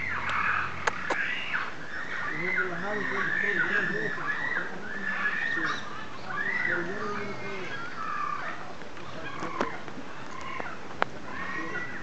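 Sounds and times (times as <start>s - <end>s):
high animal calls: 0.0s - 12.0s.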